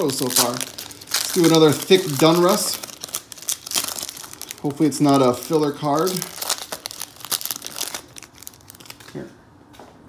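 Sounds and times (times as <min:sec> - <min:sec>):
foil wrapper tearing and crinkling: 0:00.0 - 0:09.1.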